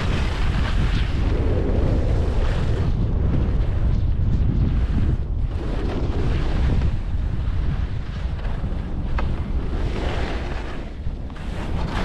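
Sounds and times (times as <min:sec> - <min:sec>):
wind buffeting microphone: 0:00.0 - 0:12.0
skis hissing over snow: 0:09.5 - 0:12.0.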